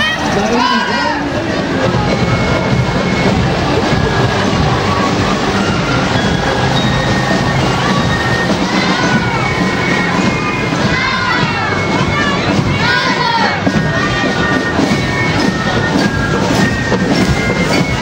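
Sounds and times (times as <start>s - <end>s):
crowd voices and shouts: 0.0s - 18.0s
parade music playing: 0.0s - 18.0s.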